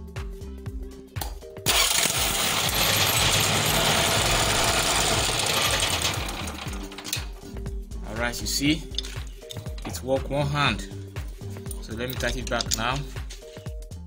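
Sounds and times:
background music: 0:00.0 - 0:14.0
generator starter cranking engine: 0:01.7 - 0:07.6.

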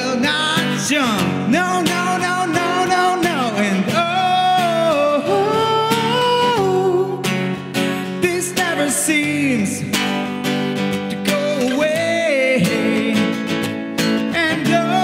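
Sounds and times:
man singing wordless long notes: 0:00.0 - 0:07.4, 0:08.0 - 0:10.1, 0:11.2 - 0:13.6, 0:14.2 - 0:15.0
acoustic guitar strumming: 0:00.0 - 0:15.0.

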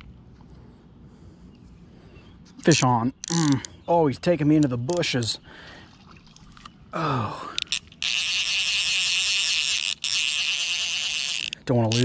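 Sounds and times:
fly reel ratchet buzzing: 0:07.5 - 0:12.0.

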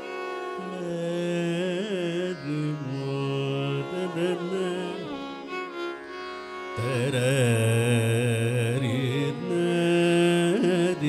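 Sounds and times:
man singing long notes: 0:00.6 - 0:05.2, 0:06.8 - 0:11.0.

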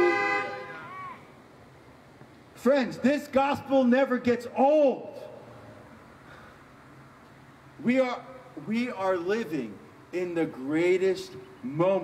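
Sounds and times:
car horns honking: 0:00.0 - 0:01.2.

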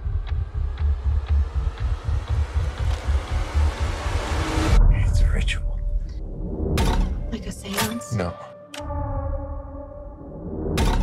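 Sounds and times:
throbbing low bass pulse: 0:00.0 - 0:06.8.

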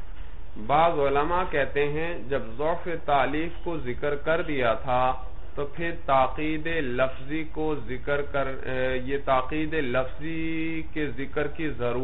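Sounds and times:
man lecturing: 0:00.6 - 0:12.0.

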